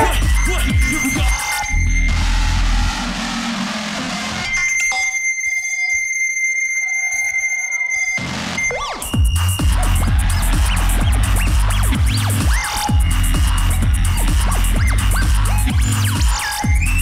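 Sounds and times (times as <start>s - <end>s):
electronic beatbox music: 0.0s - 4.5s, 8.5s - 17.0s
heavy bass: 0.0s - 4.5s, 8.2s - 17.0s.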